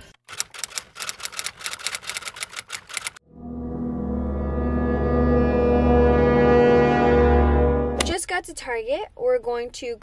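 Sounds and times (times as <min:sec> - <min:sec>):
rapid sharp mechanical clicks: 0:00.1 - 0:03.2
low sustained musical note: 0:03.3 - 0:08.0.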